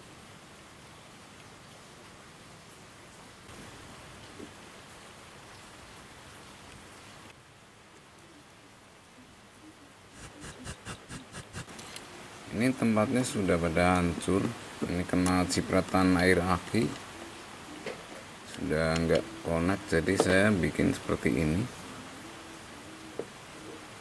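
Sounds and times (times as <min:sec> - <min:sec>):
steady low hiss: 0:00.0 - 0:24.0.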